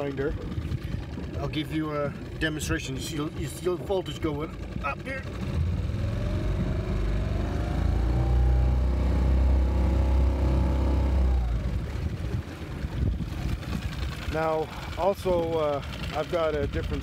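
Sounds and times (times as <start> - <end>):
outboard motor revving: 0.0 - 17.0.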